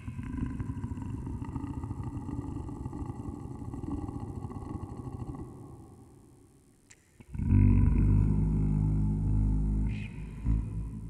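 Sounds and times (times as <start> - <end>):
low rumbling drone: 7.3 - 11.0.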